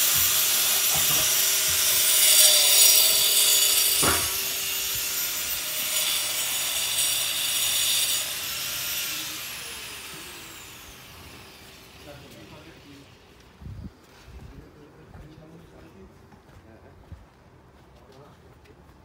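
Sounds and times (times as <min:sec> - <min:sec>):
power tool motor whine: 0:00.0 - 0:12.9.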